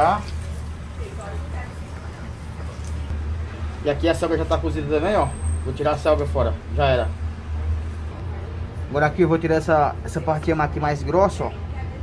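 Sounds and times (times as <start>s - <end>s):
hot oil hissing in fryer: 0.0s - 6.0s.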